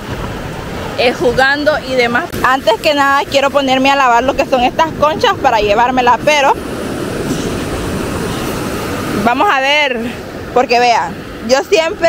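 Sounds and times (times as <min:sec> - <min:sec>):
surf washing onto beach: 0:00.0 - 0:12.0.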